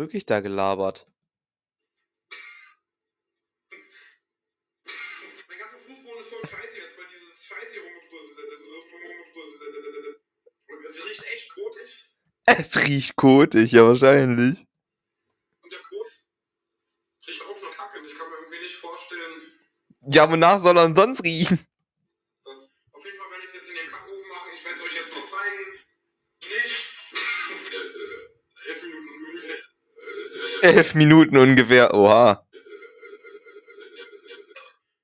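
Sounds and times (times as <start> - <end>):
man talking: 0.0 - 1.0, 12.5 - 14.6, 17.4 - 21.6, 30.4 - 32.4.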